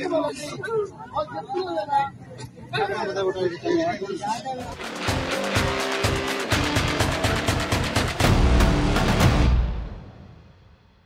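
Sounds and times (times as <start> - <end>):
music with rapid drum hits: 4.7 - 10.8.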